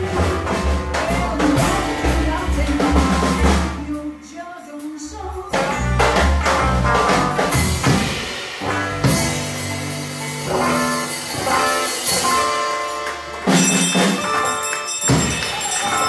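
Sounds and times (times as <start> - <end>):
drum kit steady beat: 0.0 - 16.0
electric guitars: 5.5 - 16.0.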